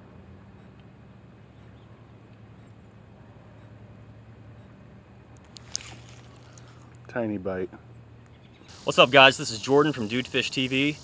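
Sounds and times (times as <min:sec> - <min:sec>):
faint low mechanical hum: 0:00.0 - 0:11.0.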